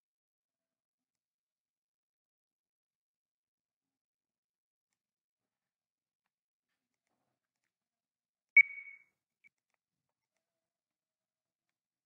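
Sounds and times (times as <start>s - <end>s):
faint short electronic blip: 8.6s - 9.0s.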